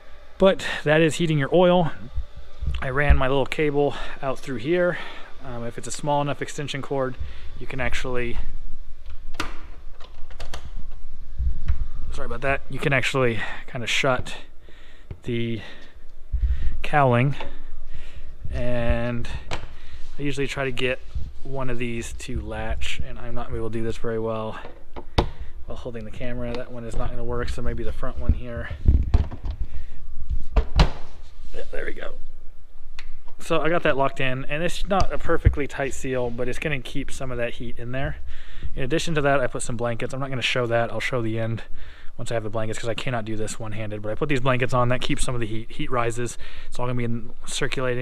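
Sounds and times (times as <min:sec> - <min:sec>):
steady low rumble: 0:00.0 - 0:10.0, 0:10.6 - 0:24.7, 0:25.3 - 0:30.6.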